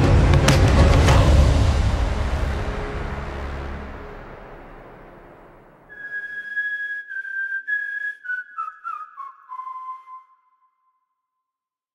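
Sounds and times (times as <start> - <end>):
low orchestral swell: 1.0 - 7.5
whistled melody: 5.9 - 11.3.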